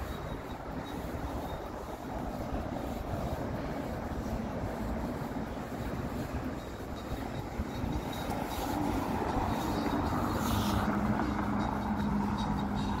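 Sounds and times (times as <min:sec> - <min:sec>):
traffic noise: 0:00.0 - 0:13.0
vehicle engine hum: 0:00.0 - 0:13.0.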